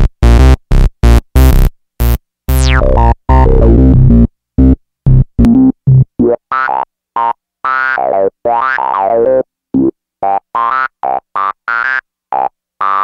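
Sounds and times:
buzzy synthesizer notes: 0.0s - 13.0s.

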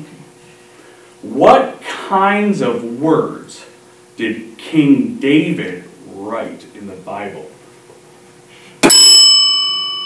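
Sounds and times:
bell-like buzzer ding: 8.8s - 10.0s.

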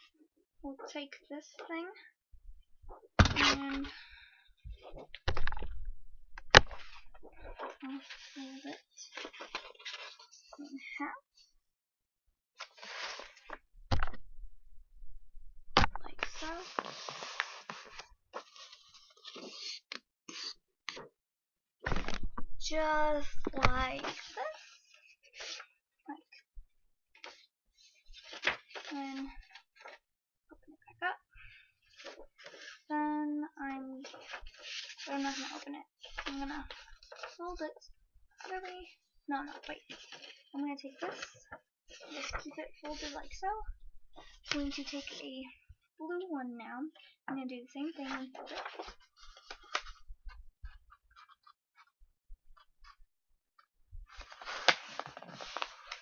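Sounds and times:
girl's voice: 0.7s - 2.1s, 3.4s - 4.0s, 7.7s - 8.9s, 10.6s - 11.2s, 16.0s - 16.8s, 22.6s - 24.6s, 28.9s - 29.4s, 32.9s - 34.1s, 35.1s - 36.7s, 37.4s - 37.8s, 38.5s - 39.8s, 40.6s - 41.2s, 42.2s - 43.7s, 44.5s - 48.4s
paper rustling: 6.4s - 10.7s, 12.6s - 14.2s, 16.0s - 20.5s, 21.9s - 25.6s, 27.2s - 30.0s, 31.9s - 32.8s, 34.0s - 37.4s, 39.4s - 40.4s, 41.0s - 43.4s, 48.0s - 51.9s, 54.1s - 56.0s.

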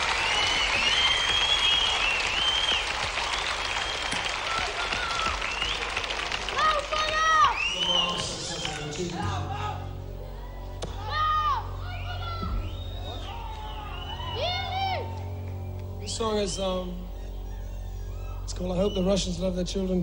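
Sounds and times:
crowd shouts: 0.0s - 5.8s, 6.4s - 15.4s
audience cheering and applauding: 0.0s - 16.0s
low steady note: 9.3s - 20.0s.

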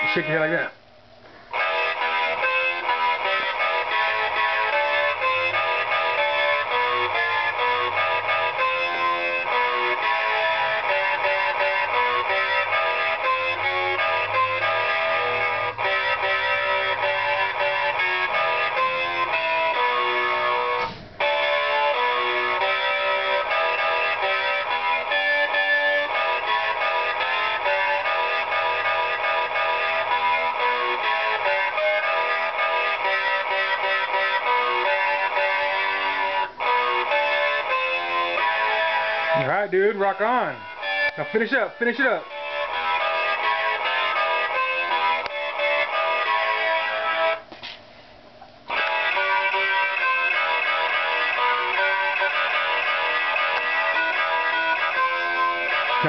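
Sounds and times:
distorted toy electric guitar rock: 0.0s - 47.5s, 48.6s - 56.0s.

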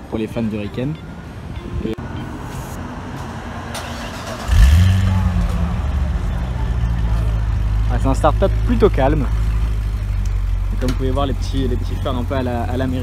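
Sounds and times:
car engine starting and idling: 3.5s - 13.0s.

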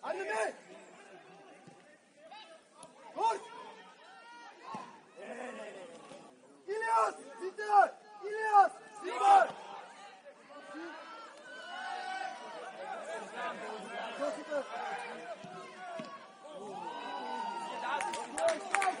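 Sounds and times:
footballers shouting: 0.0s - 5.8s, 6.6s - 19.0s.

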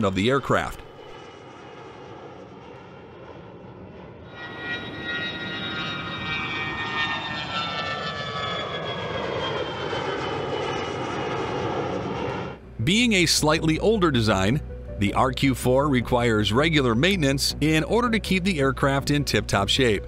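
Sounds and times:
jet engine whine: 0.0s - 20.0s.

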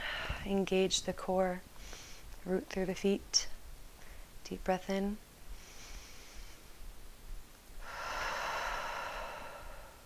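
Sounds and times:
woman exhaling: 7.8s - 10.0s
woman inhaling deeply: 7.8s - 10.0s.

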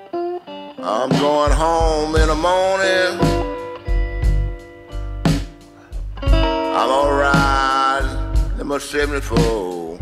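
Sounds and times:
bending guitar note: 0.0s - 8.7s
blues guitar: 0.0s - 10.0s
drum beat: 1.1s - 10.0s.

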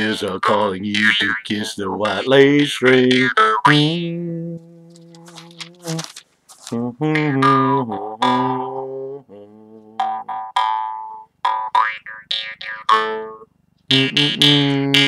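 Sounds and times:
jaw harp twanging: 0.0s - 4.3s, 10.0s - 15.0s.

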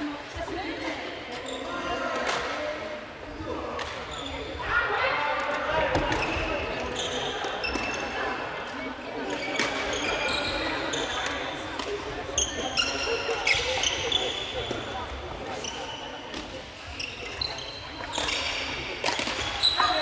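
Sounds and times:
murmur of voices: 0.0s - 20.0s
rackets hitting shuttlecocks: 18.1s - 19.6s.

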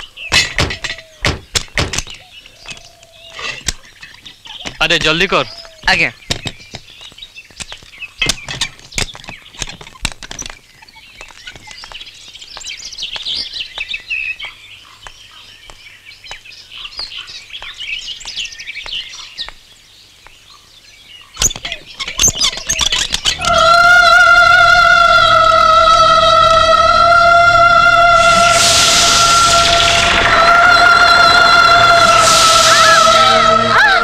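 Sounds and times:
birds chirping and twittering: 0.0s - 24.4s
sharp knocks: 0.3s - 2.2s
loud held musical note: 23.4s - 34.0s.

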